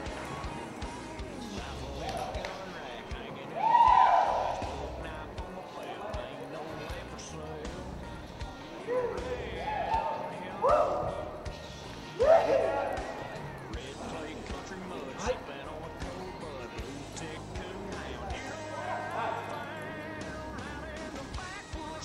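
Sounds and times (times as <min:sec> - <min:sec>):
people calling out: 0:00.0 - 0:07.4, 0:08.6 - 0:22.0
background music: 0:00.0 - 0:22.0.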